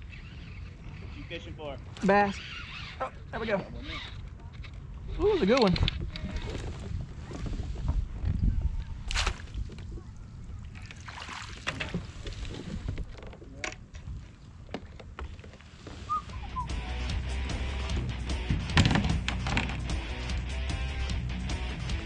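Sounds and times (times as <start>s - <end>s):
small water splashes: 8.9s - 13.2s
background music with steady beat: 16.4s - 22.0s
knocks on a kayak: 18.4s - 19.8s.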